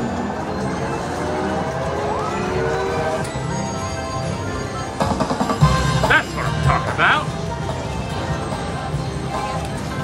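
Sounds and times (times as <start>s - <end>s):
slot machine jackpot music: 0.0s - 9.4s.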